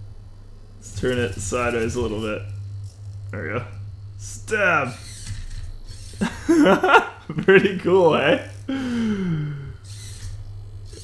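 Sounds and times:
steady low hum: 0.0s - 11.0s
servo motors whirring and grinding: 0.8s - 6.8s, 7.8s - 8.7s, 9.7s - 11.0s
man laughing: 6.2s - 9.7s.

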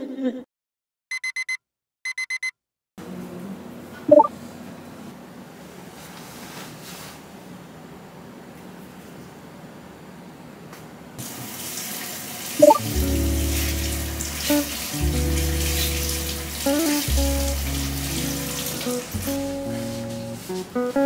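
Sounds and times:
steady water hiss: 11.2s - 20.9s
soft background music: 12.6s - 21.0s.

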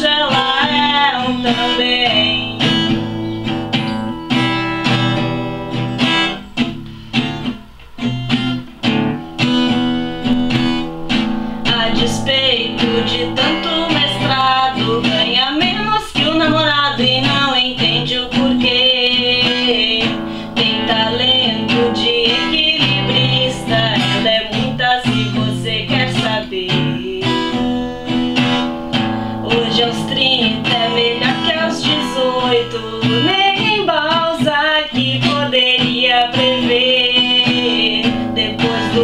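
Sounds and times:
woman singing: 0.0s - 6.4s, 10.2s - 39.0s
acoustic guitar strumming: 0.0s - 39.0s.

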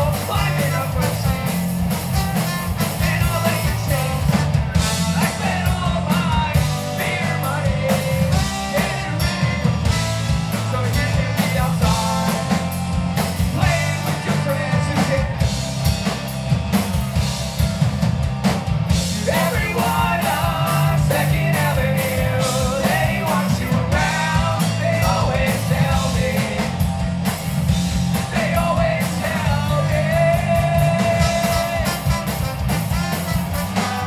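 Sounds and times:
person singing: 0.0s - 1.5s, 2.8s - 9.7s, 19.2s - 26.8s, 28.3s - 32.4s
bass guitar: 0.0s - 34.0s
distorted electric guitars: 0.0s - 34.0s
drum kit: 0.0s - 34.0s
trombone: 2.0s - 5.3s, 31.2s - 34.0s.

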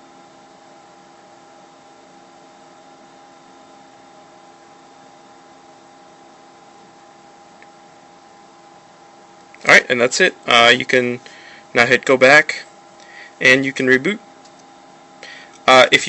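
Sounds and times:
faint hum: 0.0s - 16.0s.

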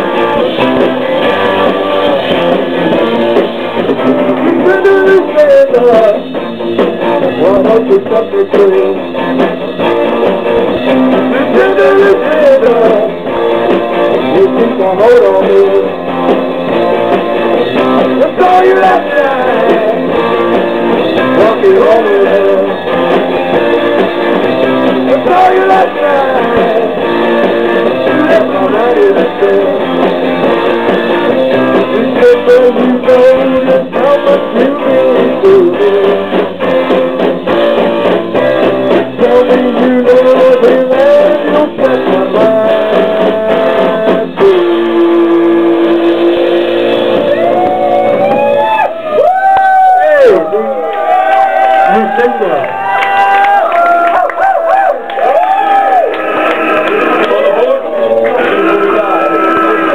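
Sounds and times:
driving drum beat: 0.0s - 53.6s
electric guitar lead: 0.0s - 59.9s.

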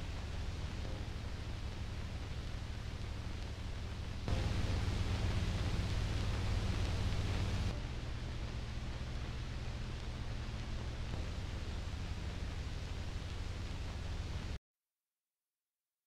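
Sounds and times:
low hum: 0.0s - 14.6s
steady hiss: 0.0s - 14.6s.

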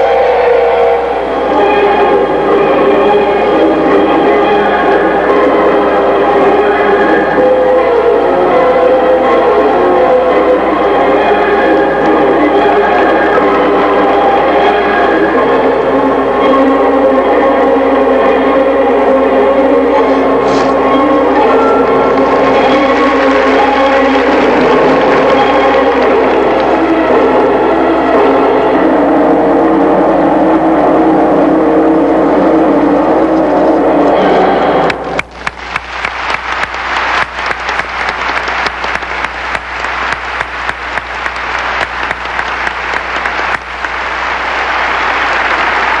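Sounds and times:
audience applauding: 20.1s - 27.7s, 34.8s - 46.0s.

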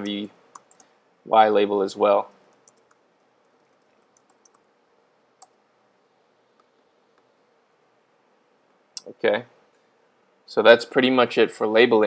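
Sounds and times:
computer keyboard typing: 0.0s - 0.9s, 2.6s - 3.0s, 3.6s - 4.7s.

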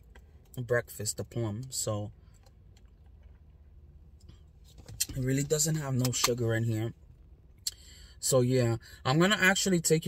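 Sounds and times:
faint low car cabin hum: 0.0s - 10.0s.

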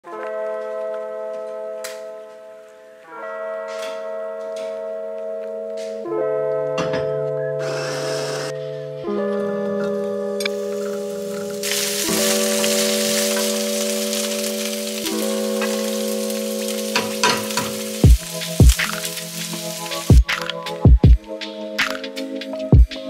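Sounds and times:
soft background music: 0.0s - 23.0s
food sizzling in a skillet: 10.6s - 20.3s.

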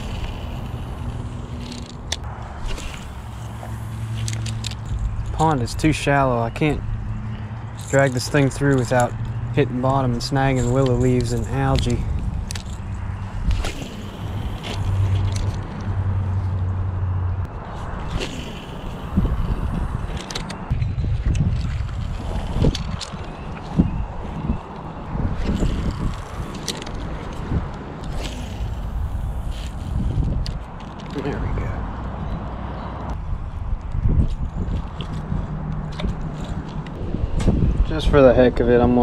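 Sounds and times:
steady low hum: 0.0s - 21.0s
wind buffeting microphone: 0.0s - 39.0s.

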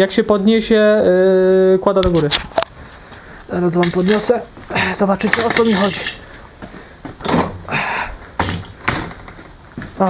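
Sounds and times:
jack creaking and scraping: 5.2s - 6.4s.

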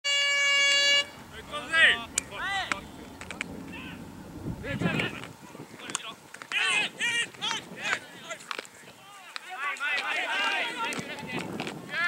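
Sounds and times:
horn blast: 0.0s - 3.1s.

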